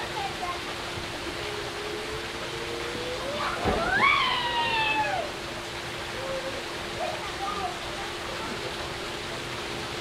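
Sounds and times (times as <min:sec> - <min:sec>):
pool waterfall rushing: 0:00.0 - 0:10.0.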